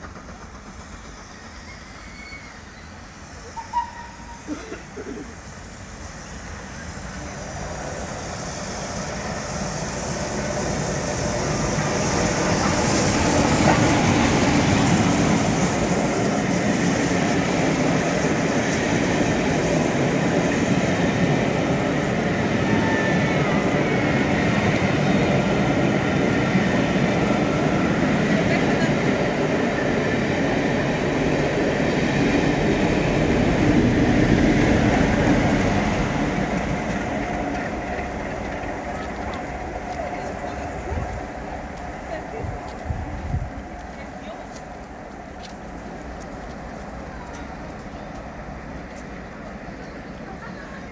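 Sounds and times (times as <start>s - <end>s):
diesel locomotive passing: 0.0s - 50.9s
steam locomotive passing at speed: 0.0s - 50.9s
wheels rumbling and clattering on rails: 0.0s - 50.9s.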